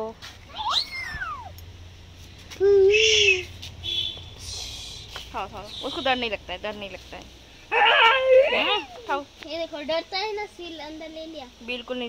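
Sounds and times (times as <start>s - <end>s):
kitten mewing: 7.7s - 9.1s.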